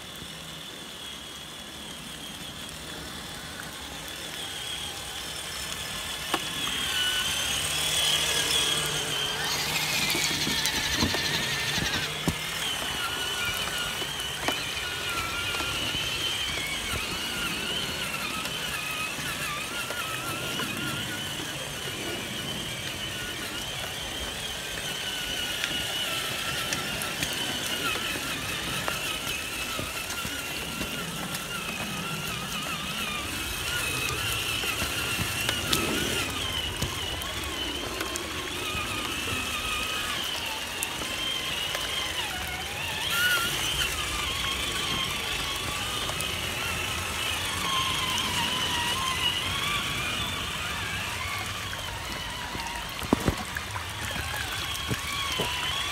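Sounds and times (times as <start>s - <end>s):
rc truck motors whining: 0.0s - 55.9s.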